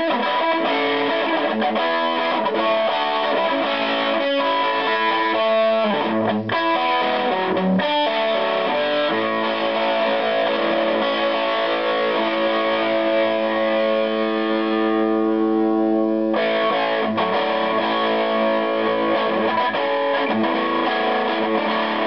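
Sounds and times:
fuzzy distorted electric guitar: 0.0 - 22.0.

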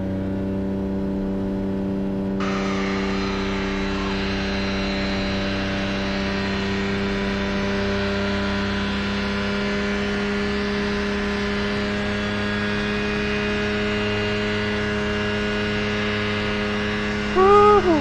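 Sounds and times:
aircraft engine and propeller running: 0.0 - 18.0.

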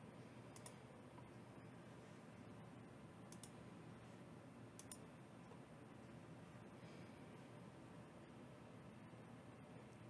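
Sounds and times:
computer mouse clicks: 0.5 - 1.3, 3.3 - 3.6, 4.8 - 5.6.

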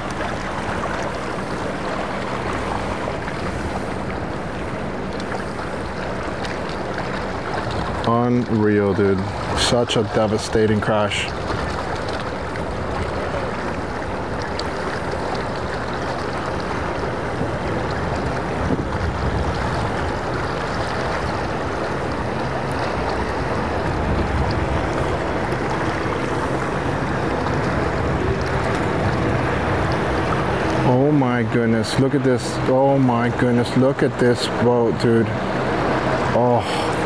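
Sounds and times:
outboard engines running: 0.0 - 37.0
water rushing along hulls: 0.0 - 37.0
wind on microphone: 16.6 - 30.9.

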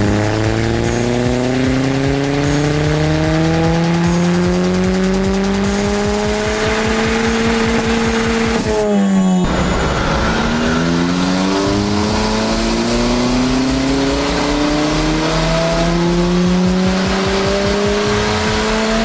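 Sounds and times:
turbocharged engine revving: 0.0 - 19.0.

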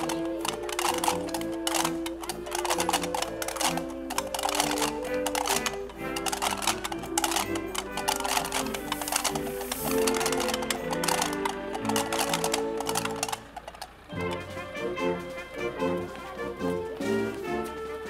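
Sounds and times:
sharp clicking percussion: 0.0 - 14.6
wind band playing: 0.0 - 18.0.

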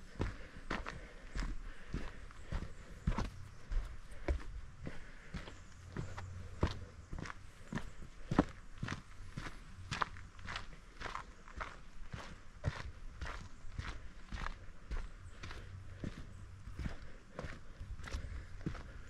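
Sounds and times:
footsteps on dirt and rock trail: 0.0 - 19.0.

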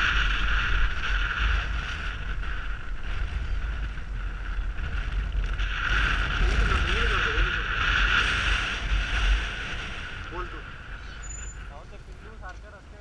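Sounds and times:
motorcycle engine rumble: 0.0 - 13.0
wind buffeting microphone: 0.0 - 13.0.

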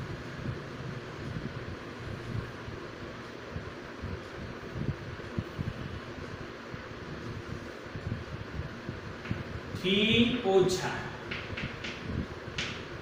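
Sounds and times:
air buffeting microphone: 0.0 - 13.0.

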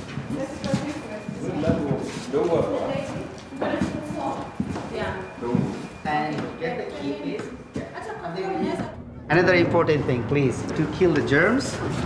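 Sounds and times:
footsteps on hard floor: 0.0 - 8.9
people talking: 0.3 - 12.0.

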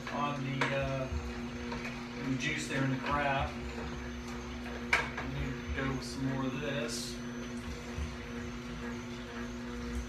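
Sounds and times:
juicer humming: 0.0 - 10.0.

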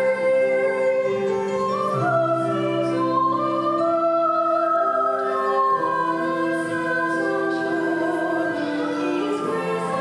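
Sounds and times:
choir singing long held notes: 1.9 - 10.0.

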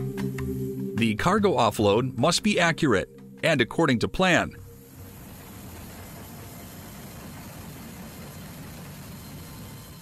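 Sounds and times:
steady mechanical drone: 0.0 - 10.0
hiss: 4.8 - 10.0.

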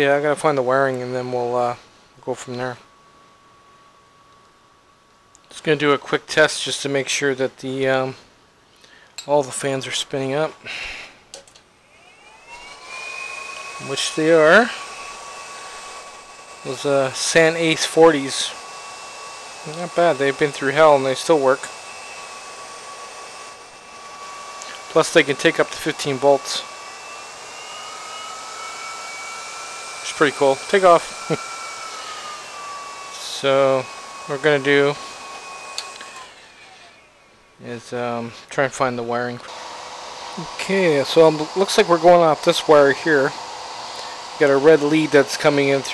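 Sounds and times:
steady airy hiss: 0.0 - 3.9, 13.8 - 18.6, 36.7 - 39.5
cooling fans whine rising: 0.0 - 8.6, 9.2 - 45.9
click: 35.3 - 36.2.

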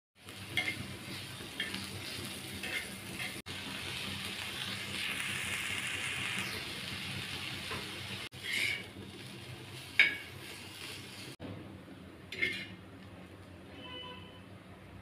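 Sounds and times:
vegetables sizzling in hot oil: 0.2 - 11.4
steel spatula scraping: 0.5 - 3.4, 8.3 - 9.0, 12.3 - 12.8.

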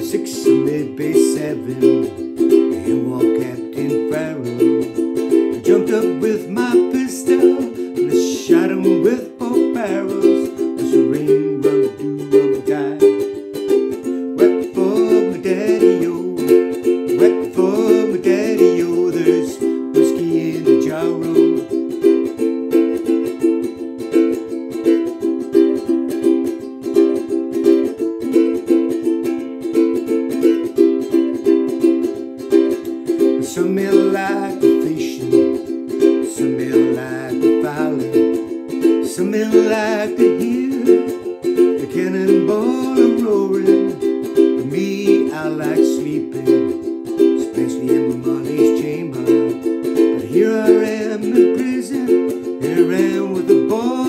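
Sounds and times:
man singing: 0.0 - 22.4, 32.5 - 54.0
ukulele strumming: 0.0 - 54.0.

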